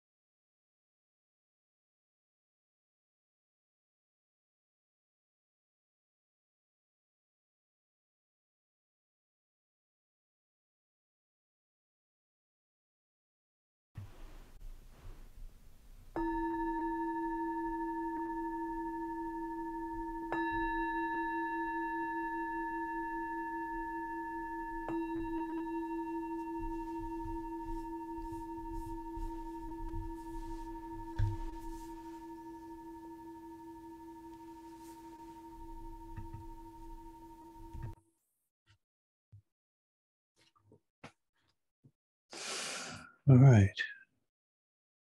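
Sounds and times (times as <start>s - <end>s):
meditation bowl-bell ringing: 16.1s - 38.0s
soft knock: 31.1s - 31.7s.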